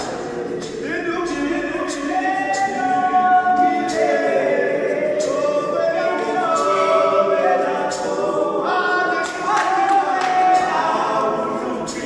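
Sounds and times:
men singing a cappella: 0.0 - 12.0.

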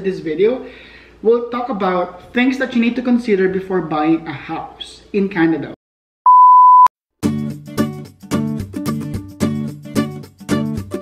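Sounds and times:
high steady test tone beep: 6.3 - 6.9
strummed guitar music: 7.2 - 11.0.

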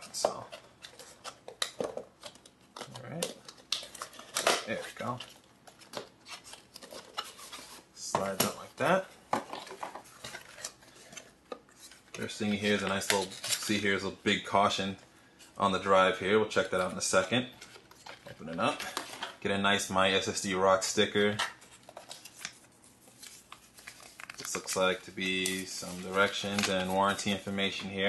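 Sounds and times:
paper and cardboard rustling: 0.0 - 14.8, 21.1 - 28.0.

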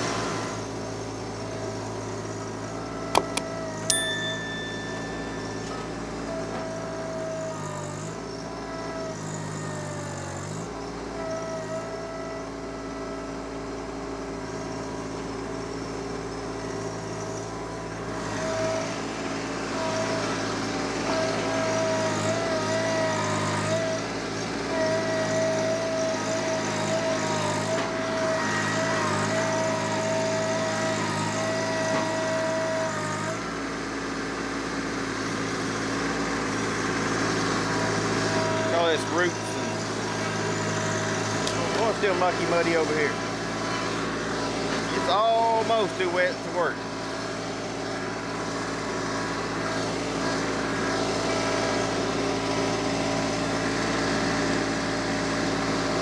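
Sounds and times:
tractor diesel engine under load: 0.0 - 56.0
high wavering whine: 2.2 - 13.3.

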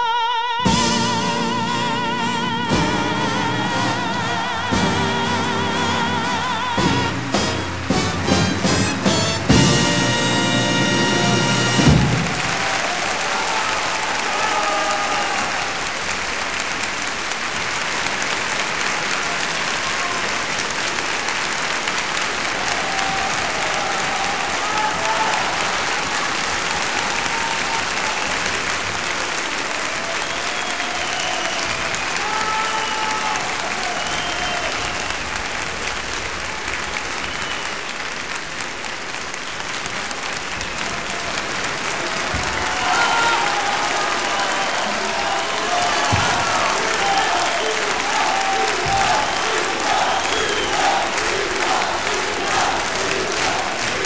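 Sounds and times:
audience applauding: 0.7 - 54.0
crowd voices and calls: 40.9 - 54.0.

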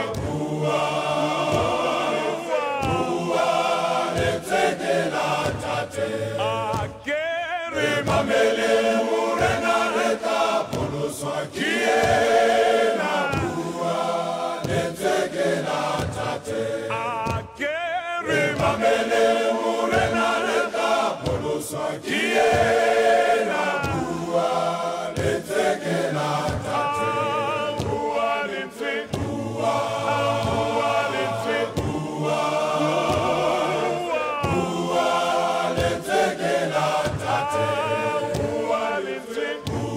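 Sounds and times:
men's choir singing: 0.0 - 39.9.

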